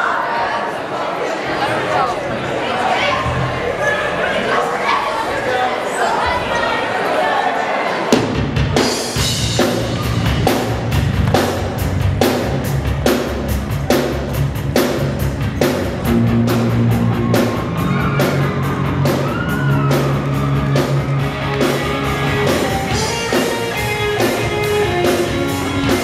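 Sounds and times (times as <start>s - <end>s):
drum kit beat: 8.2s - 26.0s
bass: 8.3s - 26.0s
electric guitar: 16.1s - 26.0s
higher melody line: 19.9s - 26.0s.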